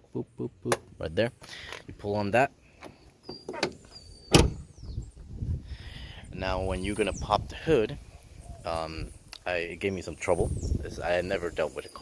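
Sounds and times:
car door shutting: 2.8s - 4.7s.

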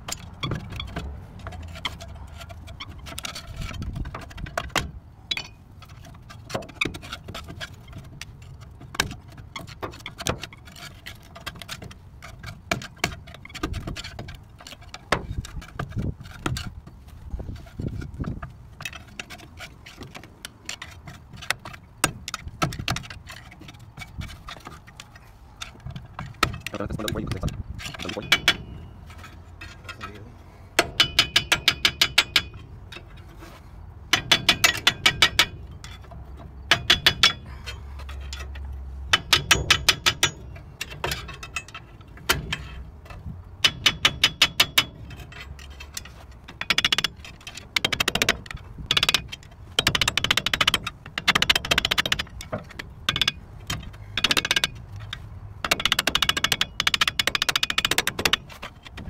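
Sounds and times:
metallic clicks and taps: 38.0s - 59.0s.

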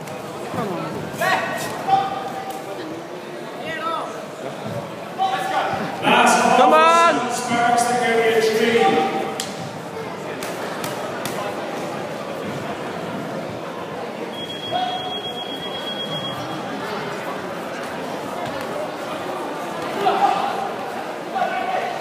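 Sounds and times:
echoing sports hall din: 3.7s - 22.0s
spectators shouting: 6.0s - 9.4s.

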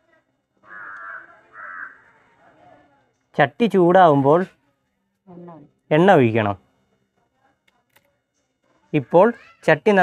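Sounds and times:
crow cawing: 0.6s - 2.4s.

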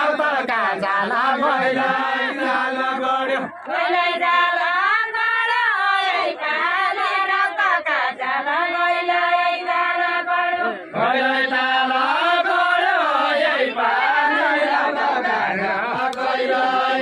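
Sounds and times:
women singing together: 0.0s - 17.0s.

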